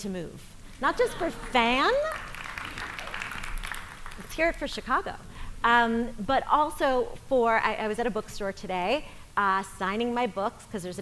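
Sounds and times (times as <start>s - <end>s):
audience applauding: 0.8s - 4.7s.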